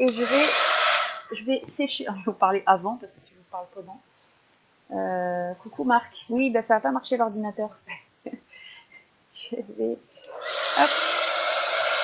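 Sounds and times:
heat tool switching on: 0:00.0 - 0:01.3
heat tool fan whooshing: 0:00.0 - 0:01.5, 0:10.3 - 0:12.0.

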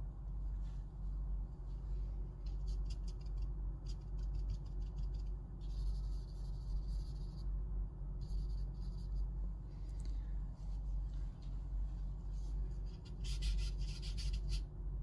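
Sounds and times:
steady low hum: 0:00.0 - 0:15.0
charcoal scratching on paper: 0:02.4 - 0:07.4, 0:08.2 - 0:09.2, 0:12.8 - 0:14.7.

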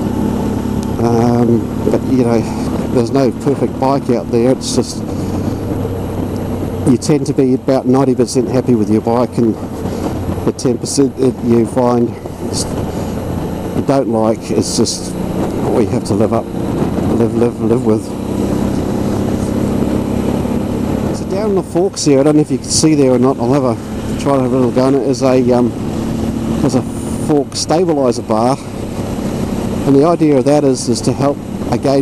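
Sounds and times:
motorcycle engine running: 0:00.0 - 0:32.0
wind rushing: 0:04.9 - 0:06.9, 0:08.9 - 0:27.4.

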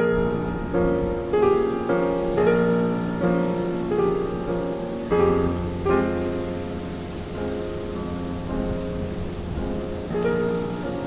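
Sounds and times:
rain falling on water: 0:00.0 - 0:11.0
slow piano music: 0:00.0 - 0:11.0.

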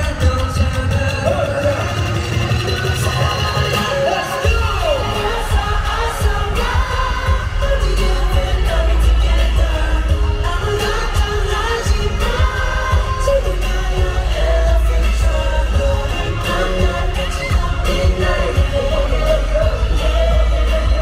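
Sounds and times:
heavy bass beat: 0:00.0 - 0:21.0
sung vocals over loudspeakers: 0:00.0 - 0:21.0.

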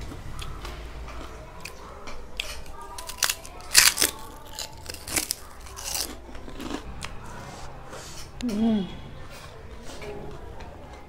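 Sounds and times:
person chewing crunchy food: 0:00.0 - 0:08.3.

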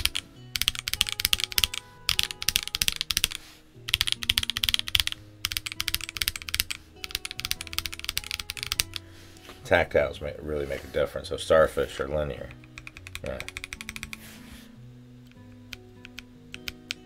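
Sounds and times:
fast mechanical keyboard typing: 0:00.0 - 0:09.0, 0:12.7 - 0:14.2.

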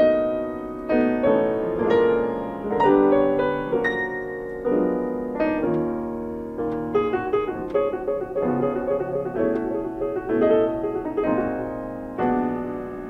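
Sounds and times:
piano chords ringing: 0:00.0 - 0:13.0.

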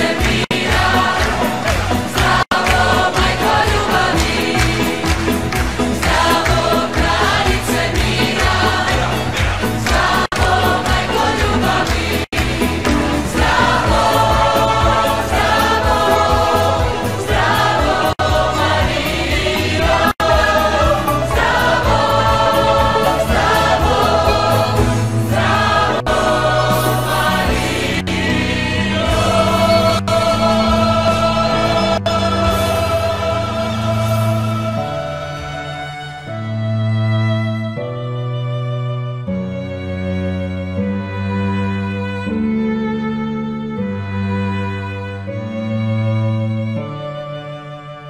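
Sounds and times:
pulsing bass line: 0:00.0 - 0:34.5
choir singing: 0:00.0 - 0:36.1
instrumental accompaniment: 0:00.0 - 0:48.0.

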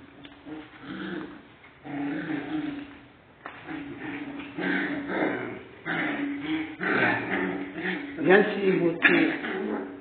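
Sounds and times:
puppies growling and yapping: 0:00.2 - 0:08.4, 0:09.0 - 0:10.0.

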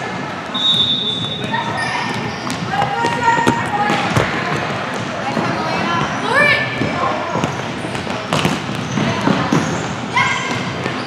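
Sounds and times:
echoing voices: 0:00.0 - 0:11.0
sneaker squeak: 0:00.4 - 0:11.0
players' footfalls: 0:01.2 - 0:11.0.

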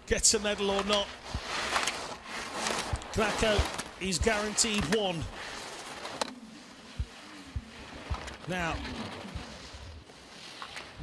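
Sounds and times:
skis scraping over snow: 0:00.1 - 0:11.0
short low thumps: 0:07.0 - 0:08.3.

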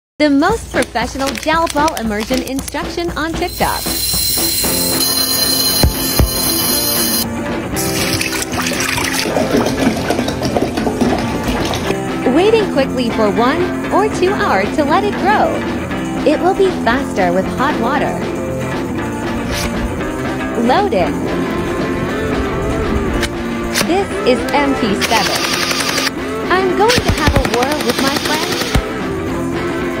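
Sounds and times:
background music: 0:00.2 - 0:30.0
beads poured into glass: 0:03.5 - 0:05.7
water pouring from bottle: 0:07.8 - 0:11.9
gel blaster firing full-auto: 0:25.0 - 0:26.1, 0:26.9 - 0:28.9.

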